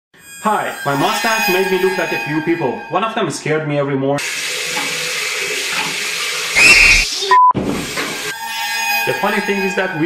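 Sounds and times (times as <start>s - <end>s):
tap water running into sink: 4.2s - 6.6s.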